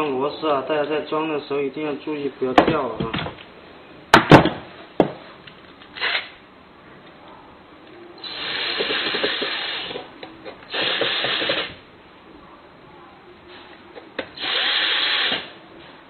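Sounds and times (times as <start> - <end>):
electric screwdriver driving screws: 6.0 - 6.3, 8.2 - 10.0, 10.7 - 11.8, 14.3 - 15.5.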